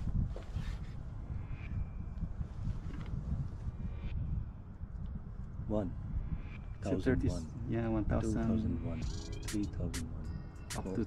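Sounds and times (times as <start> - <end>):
wind buffeting microphone: 0.0 - 9.0.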